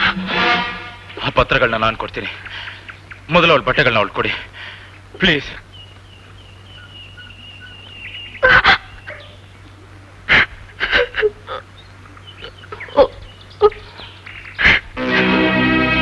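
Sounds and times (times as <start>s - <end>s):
woman sobbing: 8.4s - 9.0s, 10.8s - 11.6s.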